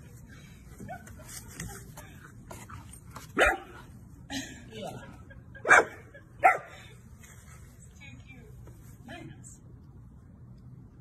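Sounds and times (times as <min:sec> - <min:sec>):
puppy barking: 0:03.4 - 0:03.8, 0:05.6 - 0:06.7.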